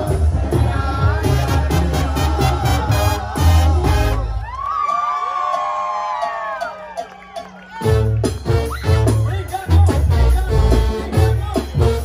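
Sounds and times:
brass band with tuba and drums: 0:00.0 - 0:04.6, 0:07.4 - 0:12.0
crowd cheering and whooping: 0:03.1 - 0:09.7.

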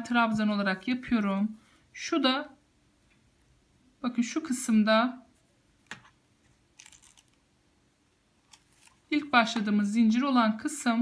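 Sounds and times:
crochet hook rustling yarn: 0:05.2 - 0:07.5, 0:08.4 - 0:09.8.

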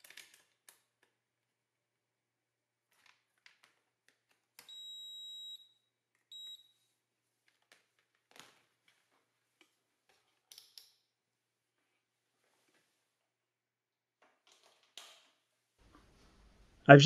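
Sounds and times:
multimeter beeping: 0:04.6 - 0:06.8.

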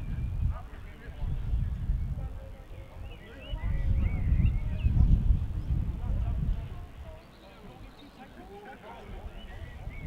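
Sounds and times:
wind gusting on microphone: 0:00.0 - 0:10.0.

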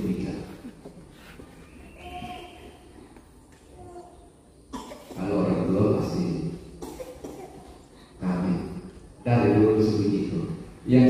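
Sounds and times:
person coughing: 0:04.7 - 0:05.4, 0:06.8 - 0:07.8.

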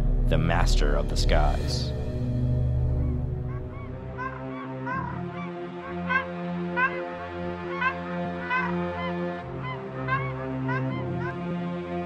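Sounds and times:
low droning background music: 0:00.0 - 0:12.0
flamingos honking: 0:03.0 - 0:12.0.

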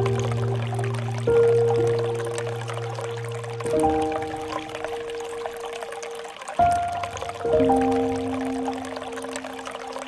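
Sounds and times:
soft instrumental music: 0:00.0 - 0:10.0
water pouring from bamboo spout: 0:00.0 - 0:10.0.

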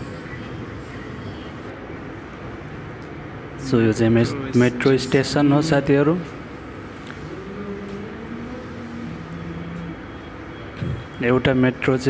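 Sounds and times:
metro station hum and hiss: 0:00.0 - 0:12.0.

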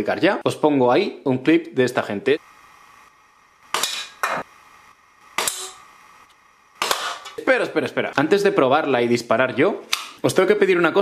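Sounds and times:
air pistol shots: 0:06.8 - 0:07.3.

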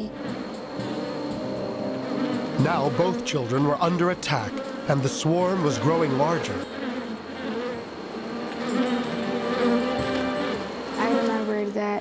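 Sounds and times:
wasps buzzing: 0:00.0 - 0:12.0.

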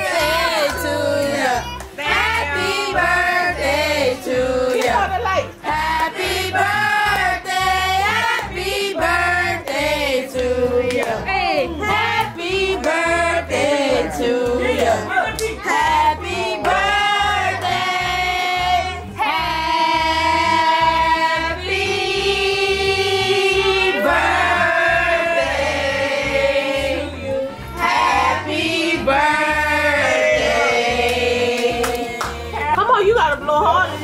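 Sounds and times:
voices singing over music: 0:00.0 - 0:34.0.

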